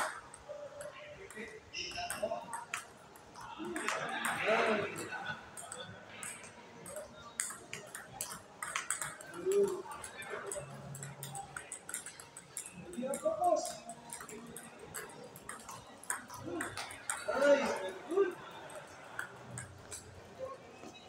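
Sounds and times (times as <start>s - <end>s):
ping pong ball hitting paddles: 0.0s - 20.3s
ball bouncing on table: 1.8s - 17.6s.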